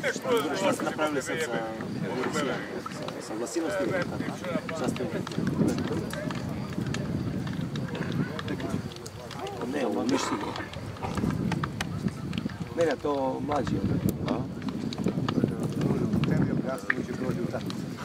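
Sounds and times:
indistinct chatter: 0.0 - 18.0
outdoor murmur: 0.0 - 18.0.

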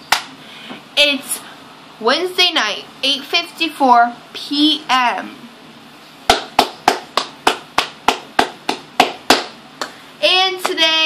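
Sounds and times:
hands clapping: 0.1 - 0.3, 6.3 - 10.0, 10.6 - 10.8.

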